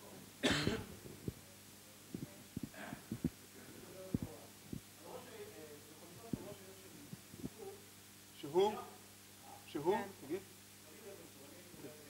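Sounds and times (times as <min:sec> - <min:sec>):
person coughing: 0:00.4 - 0:00.9.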